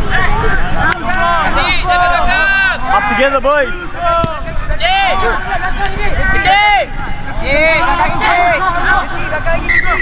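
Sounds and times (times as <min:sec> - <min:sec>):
people shouting: 0:00.0 - 0:10.0.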